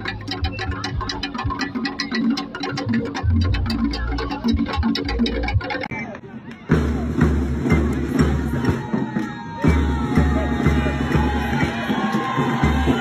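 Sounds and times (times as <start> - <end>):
music with heavy bass beat: 0.0 - 5.9.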